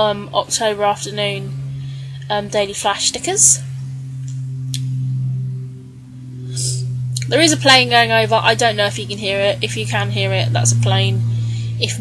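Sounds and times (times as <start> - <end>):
airplane drone overhead: 0.0 - 12.0.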